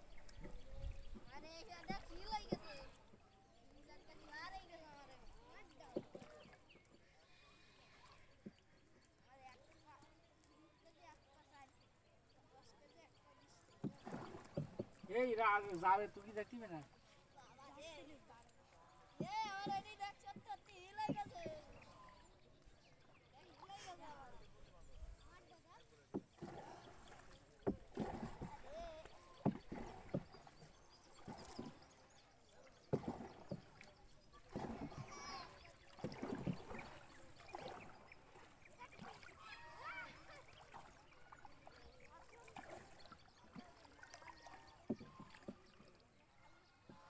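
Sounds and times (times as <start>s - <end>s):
boat being paddled: 0.0s - 47.0s
oars knocking and splashing: 0.0s - 47.0s.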